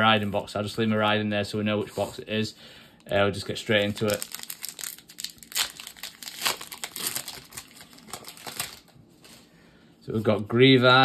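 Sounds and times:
foil wrapper tearing and crinkling: 0:03.7 - 0:08.9.

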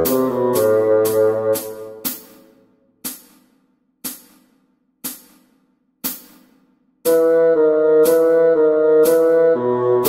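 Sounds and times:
cymbal strikes: 0:00.0 - 0:07.2.

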